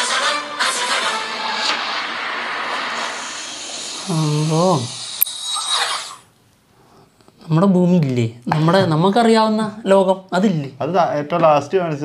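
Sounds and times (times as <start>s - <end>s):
steady rushing noise: 0.7s - 5.2s.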